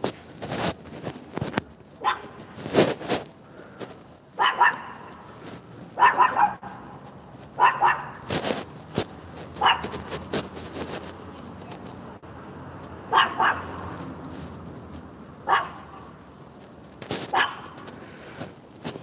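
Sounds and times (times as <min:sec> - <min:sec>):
knocks and rustles: 0:00.0 - 0:04.2, 0:08.2 - 0:12.0, 0:15.8 - 0:19.0
dog barking: 0:02.0 - 0:02.4, 0:04.4 - 0:05.1, 0:06.0 - 0:06.9, 0:07.6 - 0:08.2, 0:09.6 - 0:10.0, 0:13.1 - 0:13.8, 0:15.4 - 0:16.0, 0:17.3 - 0:17.8.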